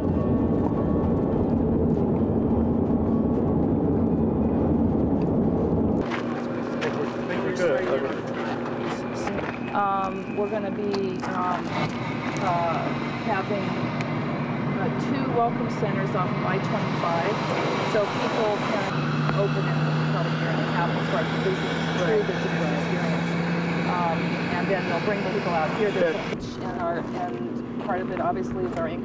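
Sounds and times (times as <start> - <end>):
low engine hum: 0.0 - 29.0
people talking: 6.2 - 13.8, 14.8 - 29.0.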